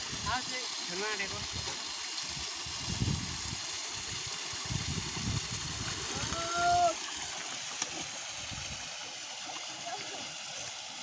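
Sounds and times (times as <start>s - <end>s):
steady rush of water: 0.0s - 11.0s
water sloshing and splashing: 5.2s - 11.0s.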